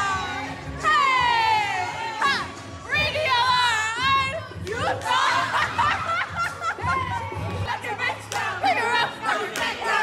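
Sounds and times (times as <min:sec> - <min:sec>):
onlookers laughing: 0:05.3 - 0:07.4.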